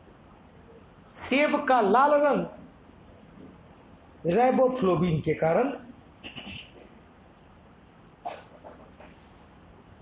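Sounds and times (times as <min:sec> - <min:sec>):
marker squeaking on whiteboard: 0:06.2 - 0:06.9, 0:08.2 - 0:09.3.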